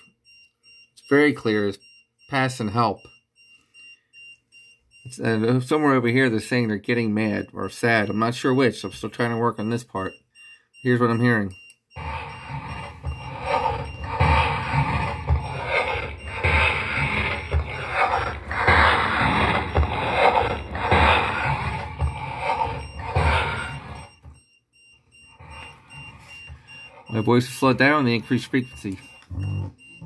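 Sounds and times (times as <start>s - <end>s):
indistinct murmuring: 12.0s - 24.1s
low thumps: 12.0s - 24.4s.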